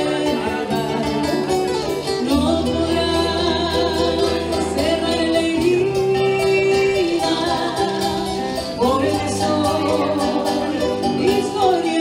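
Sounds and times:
low bass notes: 0:00.0 - 0:12.0
plucked strings: 0:00.0 - 0:12.0
woman singing: 0:00.0 - 0:12.0.

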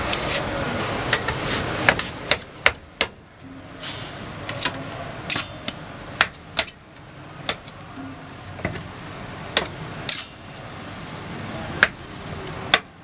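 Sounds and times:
kitchen hum: 0:00.0 - 0:13.0.

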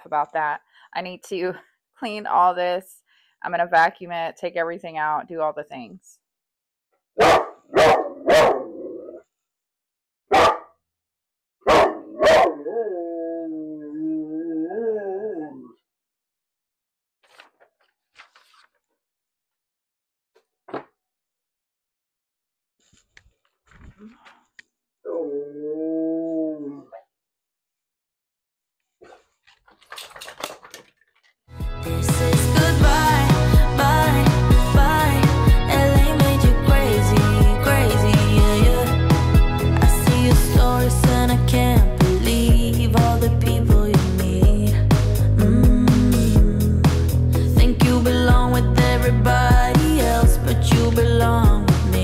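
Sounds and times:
dog barking: 0:07.2 - 0:08.9, 0:10.3 - 0:10.7, 0:11.6 - 0:12.7
dog howling: 0:11.7 - 0:15.8, 0:25.0 - 0:26.9
items clicking and knocking on desk: 0:29.4 - 0:31.4
background music: 0:31.5 - 0:52.0.

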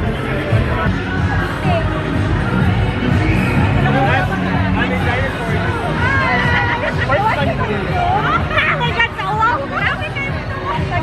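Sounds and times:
crowd babble: 0:00.0 - 0:11.0
excited voices talking and laughing: 0:00.0 - 0:11.0.

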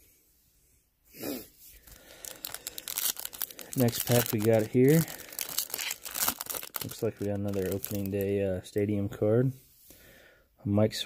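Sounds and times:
wrapper tearing and crinkling: 0:01.8 - 0:08.3.

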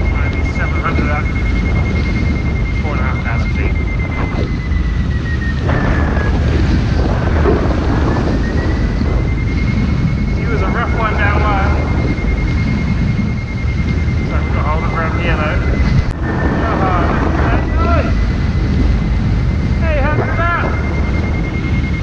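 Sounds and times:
high-pitched whistle: 0:00.0 - 0:18.8
heavy wind rumble on microphone: 0:00.0 - 0:22.0.

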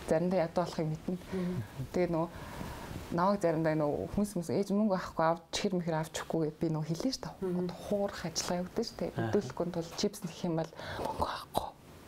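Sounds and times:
woman talking softly: 0:07.0 - 0:11.8.

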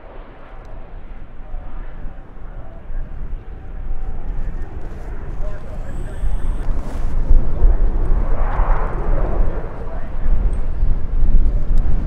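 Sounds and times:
deep jet rumble: 0:00.0 - 0:12.0.

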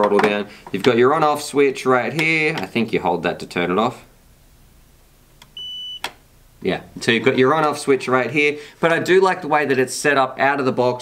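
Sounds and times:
high transmitter beep: 0:05.6 - 0:06.1.

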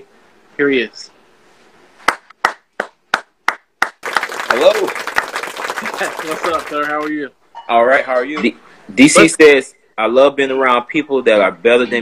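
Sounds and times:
person clapping: 0:02.1 - 0:07.1.

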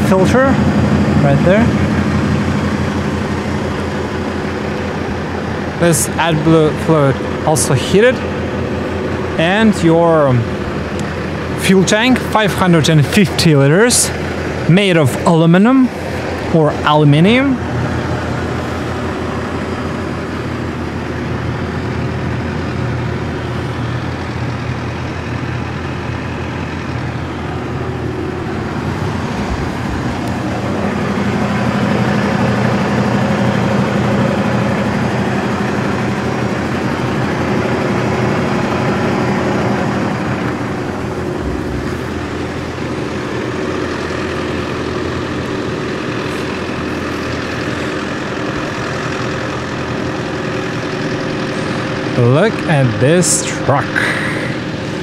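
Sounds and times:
diesel truck engine idling: 0:00.0 - 0:55.0.

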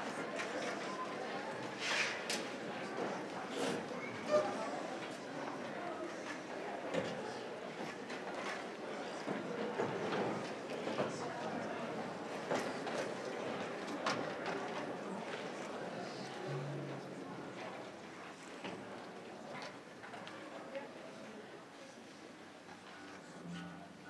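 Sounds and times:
murmur of audience voices: 0:00.0 - 0:24.0.

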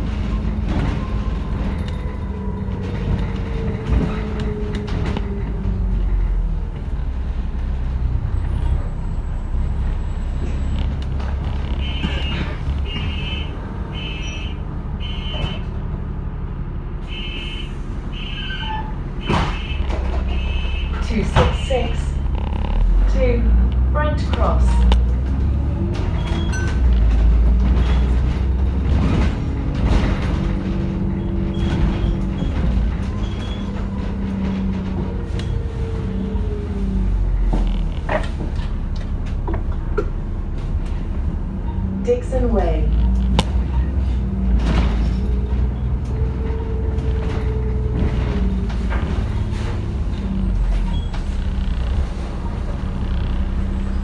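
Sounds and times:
bus body rattles: 0:00.0 - 0:54.0
bus engine droning: 0:00.0 - 0:54.0.

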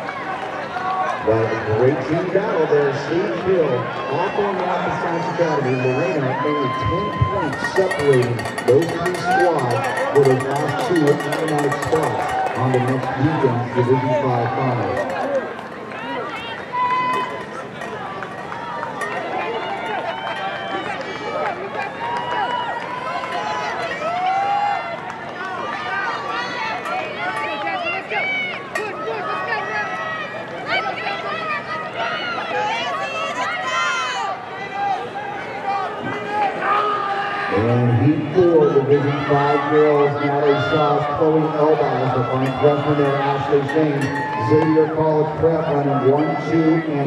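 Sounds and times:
spectators shouting and cheering: 0:00.0 - 0:47.0.

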